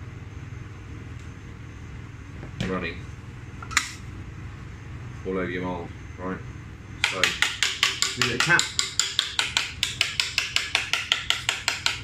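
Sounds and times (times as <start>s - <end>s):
ventilation hum: 0.0s - 12.0s.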